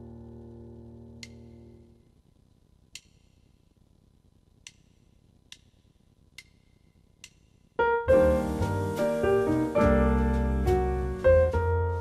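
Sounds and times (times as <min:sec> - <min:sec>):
piano chord: 0:07.8 - 0:12.0.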